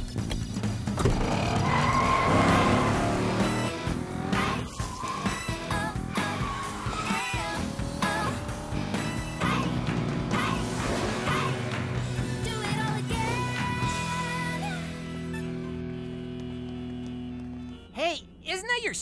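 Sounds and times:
upbeat background music: 0:00.0 - 0:19.0
wavering tire squeals: 0:01.1 - 0:11.8
cartoon car speeding away: 0:01.2 - 0:13.8.

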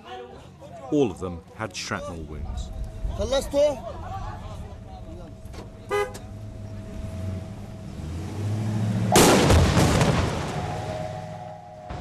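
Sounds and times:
horn toot: 0:05.9 - 0:06.3
vehicle engine pulling away: 0:06.2 - 0:12.0.

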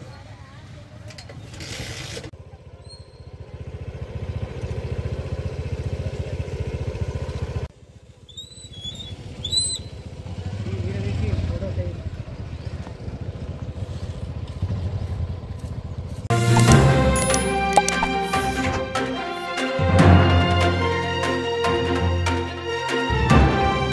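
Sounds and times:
small engine running: 0:09.2 - 0:18.8.

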